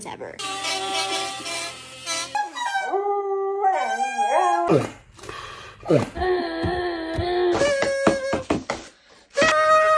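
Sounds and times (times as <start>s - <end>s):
reedy wavering homemade bagpipe wail: 0.4s - 4.7s, 9.4s - 9.9s.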